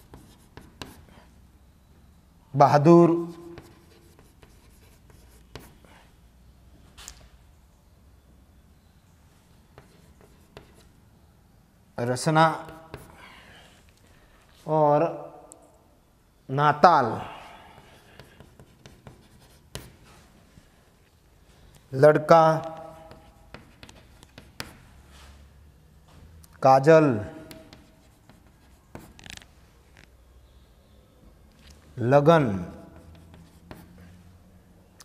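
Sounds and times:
chalk tapping and scratching: 0:00.0 - 0:01.3, 0:03.1 - 0:06.0, 0:09.7 - 0:11.0, 0:12.6 - 0:13.2, 0:17.8 - 0:20.4, 0:22.5 - 0:25.5, 0:27.2 - 0:29.5, 0:32.6 - 0:34.2.

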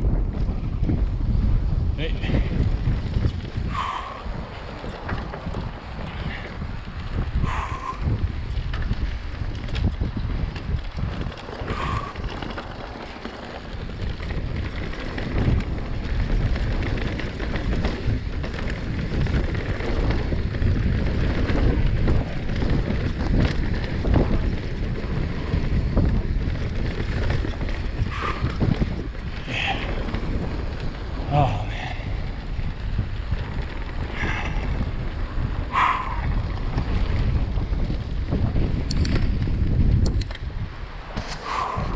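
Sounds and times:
bike rattling: 0:00.0 - 0:41.9
wind on microphone: 0:00.0 - 0:41.9
tyres rolling over dirt: 0:00.1 - 0:41.9.

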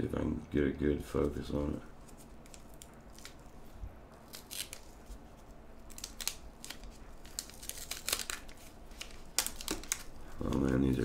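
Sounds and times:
wax paper crinkling and tearing: 0:01.1 - 0:11.0.

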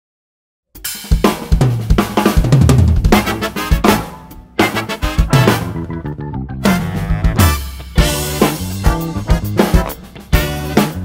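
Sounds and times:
band track with bass line: 0:00.8 - 0:11.0
funk drum groove: 0:00.8 - 0:11.0.

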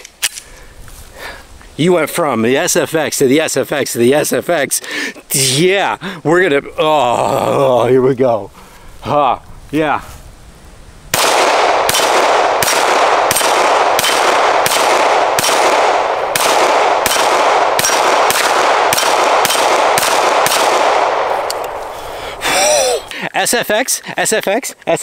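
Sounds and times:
pistol shots: 0:11.1 - 0:21.9.

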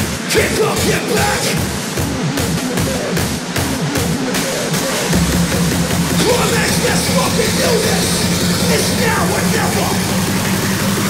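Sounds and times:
hardstyle track pounding beat: 0:00.0 - 0:10.1
continuous low bass: 0:01.8 - 0:11.0.

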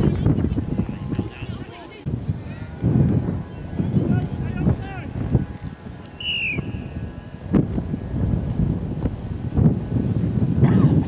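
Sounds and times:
wind buffeting microphone: 0:00.0 - 0:11.0
high falling whistle: 0:06.2 - 0:07.4.

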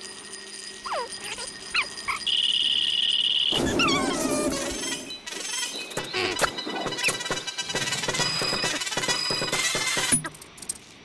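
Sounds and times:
cartoon falling whistles: 0:03.6 - 0:04.9.

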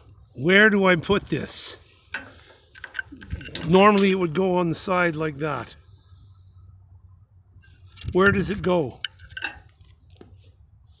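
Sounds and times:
metallic clinks and taps: 0:02.1 - 0:04.1, 0:07.9 - 0:10.3.

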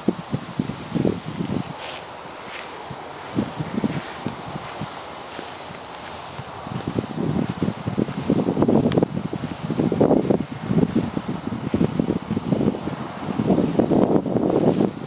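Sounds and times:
wind buffeting microphone: 0:00.0 - 0:15.0
footsteps through grass: 0:00.2 - 0:14.9.

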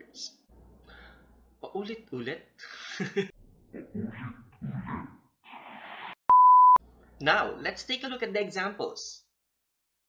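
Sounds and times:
man laughing: 0:02.7 - 0:03.3.

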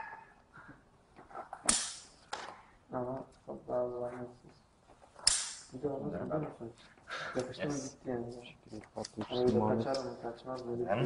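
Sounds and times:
people talking: 0:07.4 - 0:11.0.

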